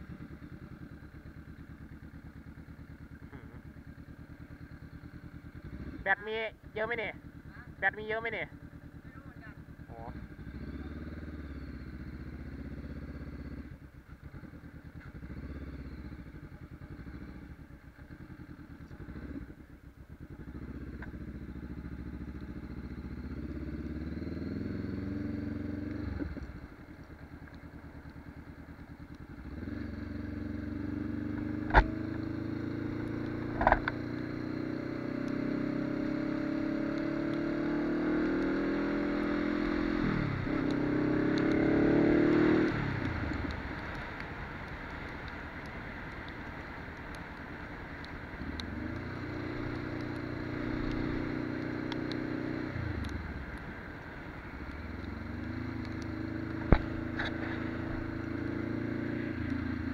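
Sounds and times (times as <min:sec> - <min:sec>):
motorcycle engine accelerating: 0:00.0 - 0:59.9.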